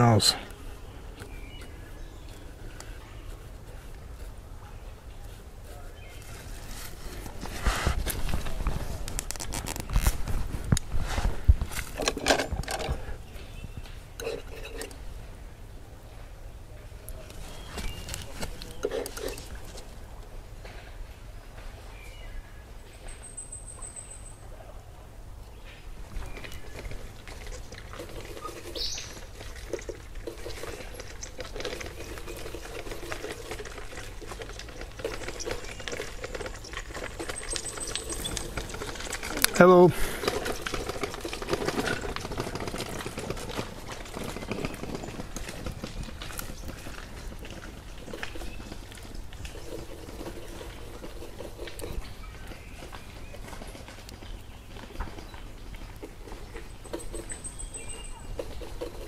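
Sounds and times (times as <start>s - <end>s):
distant voices: 0.0s - 23.2s, 24.2s - 59.0s
high bird chirps: 28.4s - 29.3s.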